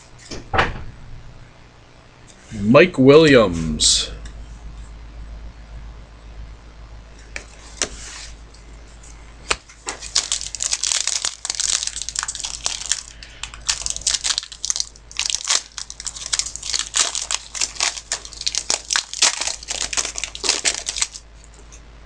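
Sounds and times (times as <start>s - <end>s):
plastic wrapping crinkling and tearing: 9.5s - 21.6s.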